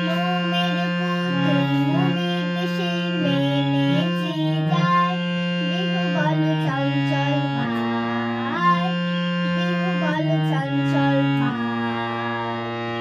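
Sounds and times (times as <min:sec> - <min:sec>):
girl singing: 0:00.0 - 0:13.0
harmonium chords: 0:00.0 - 0:13.0.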